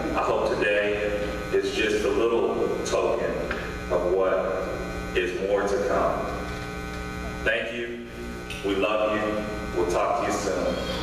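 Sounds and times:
electrical mains hum: 0.0 - 11.0
man speaking: 0.1 - 6.4, 7.4 - 10.9.

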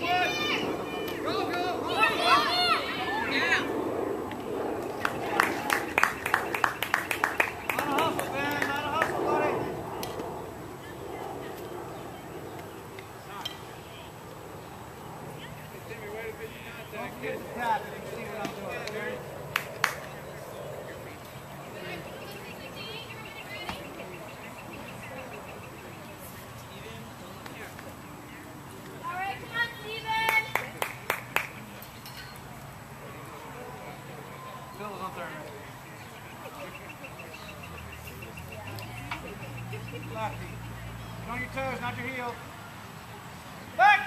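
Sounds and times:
faint distant voices: 0.0 - 44.0
low background noise: 0.0 - 44.0
hand claps: 4.9 - 9.2, 18.4 - 20.2, 30.2 - 31.7.

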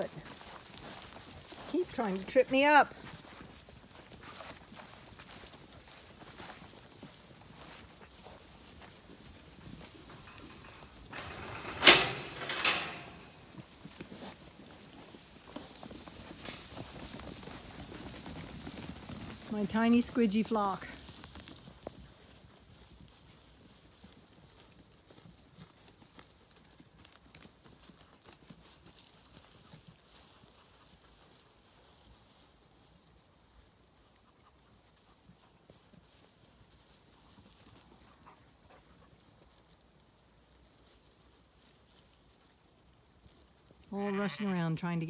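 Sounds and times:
sheep footfalls on grass: 0.0 - 12.4, 13.0 - 43.9.

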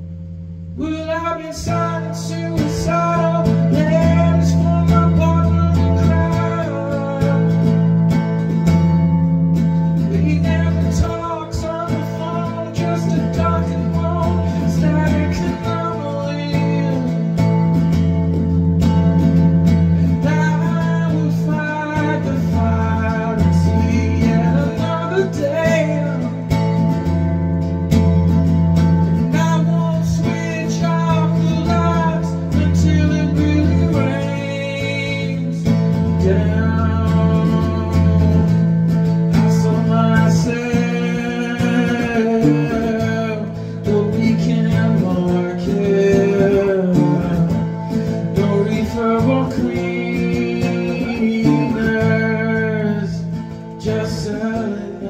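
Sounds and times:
strummed acoustic guitar: 0.0 - 55.0
person singing: 0.8 - 27.3, 29.1 - 55.0.

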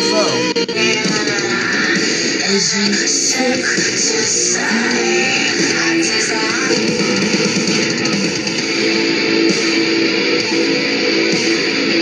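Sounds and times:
heavy metal music: 0.0 - 12.0.

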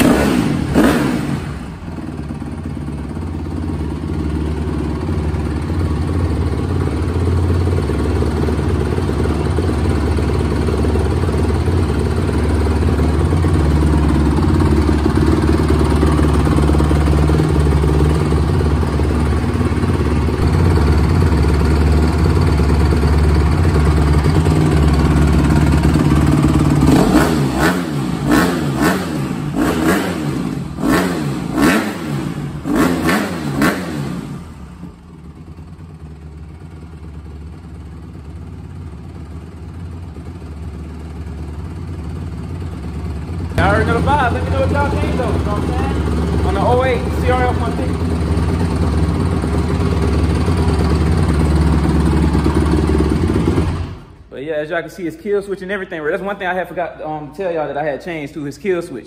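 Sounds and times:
dirt bike engine idling and revving: 0.0 - 54.3.

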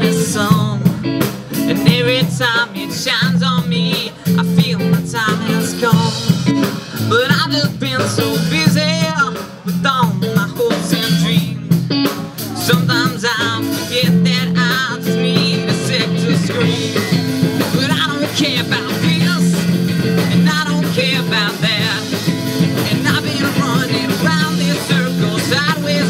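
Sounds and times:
live rock band playing loudly: 0.0 - 26.0.

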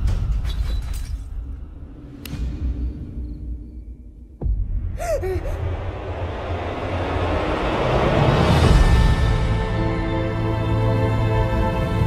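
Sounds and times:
sharp gasp: 5.0 - 5.6.

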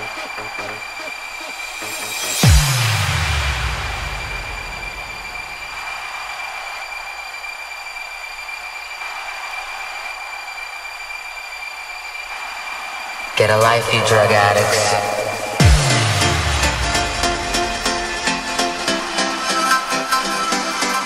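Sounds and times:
synthesised white-noise wash: 0.0 - 19.8
low bass drone: 1.7 - 5.8, 15.4 - 18.9.

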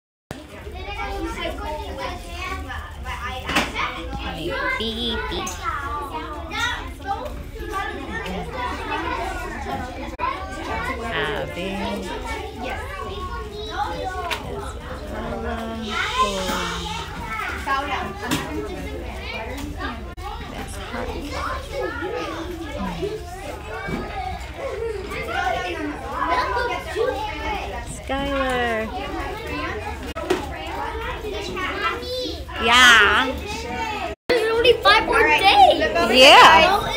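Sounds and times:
children chattering: 0.3 - 36.9.

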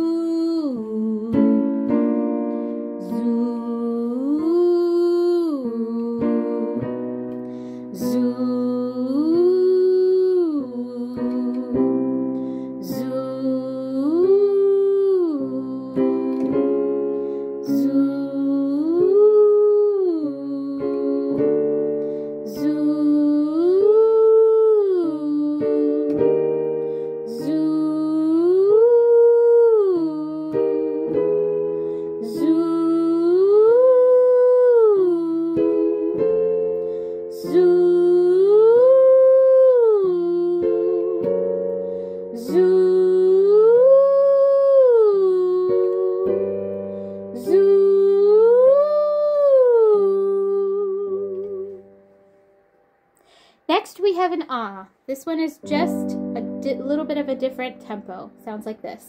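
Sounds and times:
person singing vocal warm-up: 0.0 - 52.2, 55.6 - 59.0
sustained piano chords: 0.0 - 53.2, 55.6 - 59.0.

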